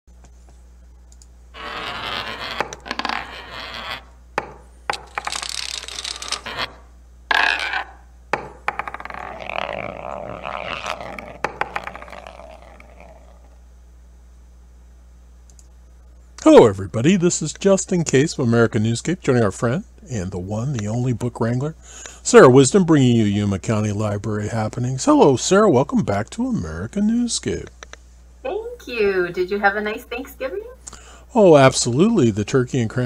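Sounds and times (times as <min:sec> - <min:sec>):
faint steady low hum: 0:00.1 - 0:33.0
balls rolling along tracks: 0:01.6 - 0:13.6.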